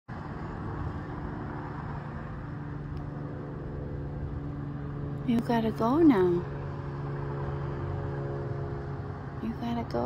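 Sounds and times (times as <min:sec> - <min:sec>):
road traffic noise: 0:00.0 - 0:10.0
vehicle engine humming: 0:00.1 - 0:10.0.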